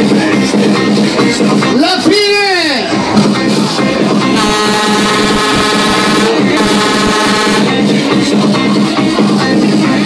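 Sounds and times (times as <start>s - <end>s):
loud dance music: 0.0s - 10.0s
fairground ride horn blast: 4.3s - 7.9s.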